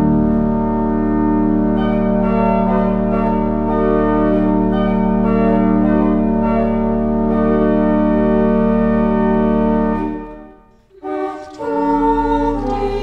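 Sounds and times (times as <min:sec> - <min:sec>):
pipe organ chords: 0:00.0 - 0:13.0.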